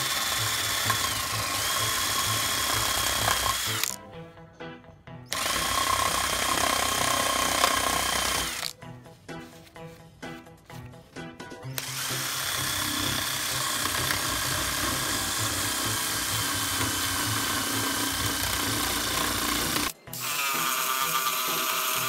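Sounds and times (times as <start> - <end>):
electric drill sanding wood: 0.0 - 4.0, 5.3 - 8.7, 11.8 - 22.0.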